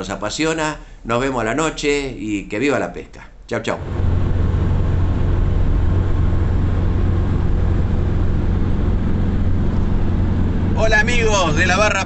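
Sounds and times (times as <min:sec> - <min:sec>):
car cabin road and engine rumble: 0:03.8 - 0:12.0.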